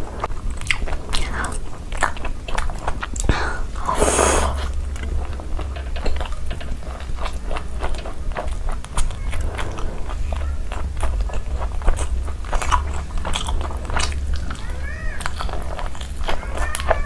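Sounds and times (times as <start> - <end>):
biting and chewing: 0.0 - 17.0
steady low hum: 0.0 - 17.0.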